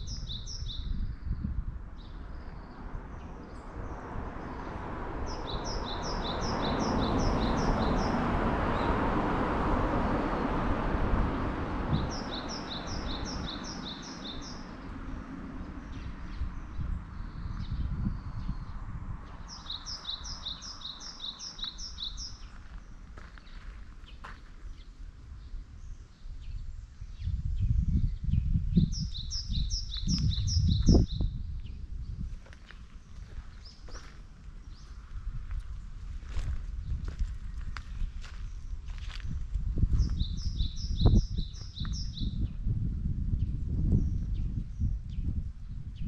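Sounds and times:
songbird chirping: 0.0 - 10.6, 11.7 - 42.6.

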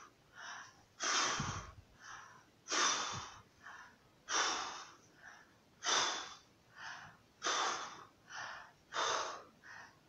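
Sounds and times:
woman drawing soft breaths: 0.0 - 10.0
woman puffing breaths: 0.0 - 10.0.

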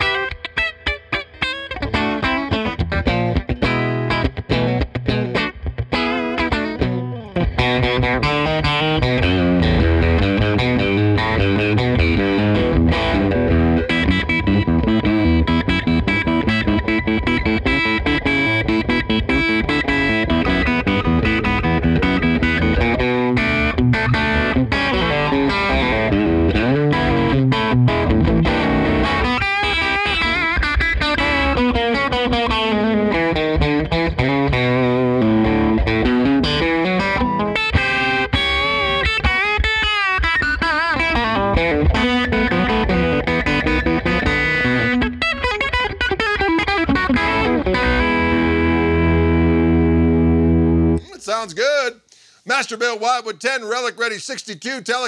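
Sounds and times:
electric guitar through amplifier: 0.0 - 51.2.

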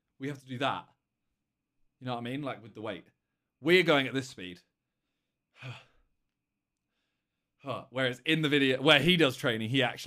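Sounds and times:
man sighing: 5.5 - 6.1.

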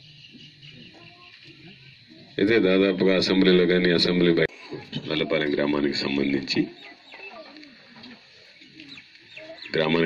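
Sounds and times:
faint bird calls: 0.0 - 3.3, 4.5 - 10.0.

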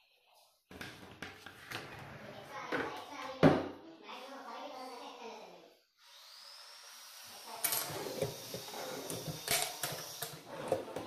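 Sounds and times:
drawer sliding on runners: 10.3 - 11.0.

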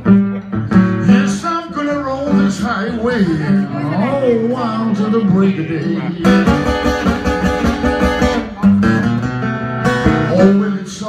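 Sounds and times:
acoustic guitar blues: 0.0 - 11.0
man singing: 1.0 - 7.4, 10.2 - 11.0.

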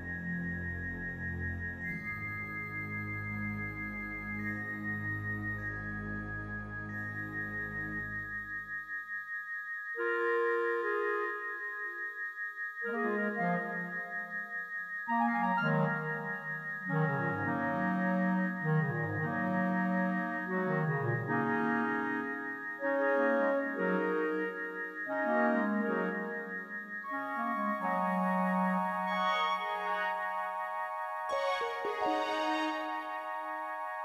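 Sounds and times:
organ-like keyboard chords: 0.0 - 8.9, 10.0 - 34.0.

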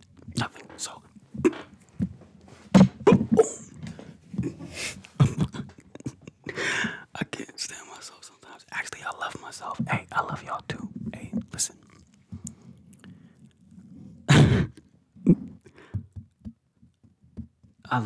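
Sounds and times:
man whispering: 0.3 - 1.7, 7.0 - 12.0
mouth clicks: 3.0 - 3.8.

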